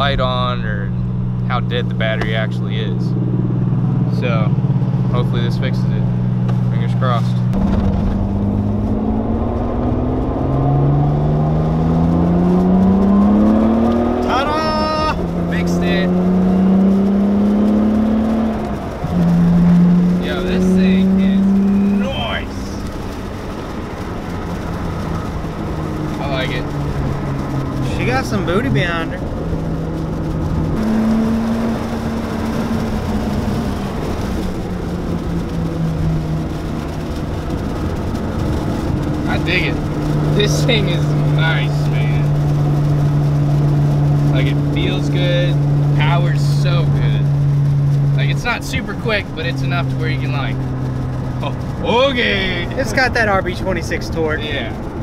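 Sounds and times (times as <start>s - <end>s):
car engine accelerating through gears: 0.0s - 55.0s.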